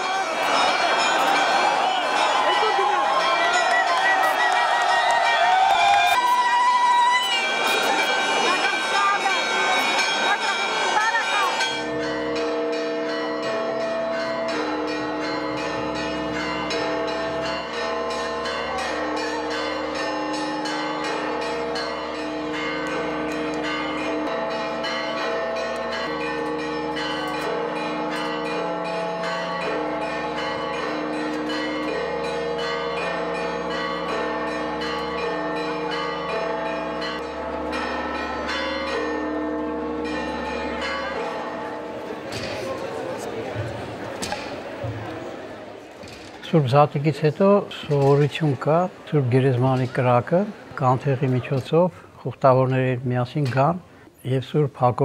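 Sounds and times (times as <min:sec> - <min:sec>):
church bells pealing: 0:00.0 - 0:55.0.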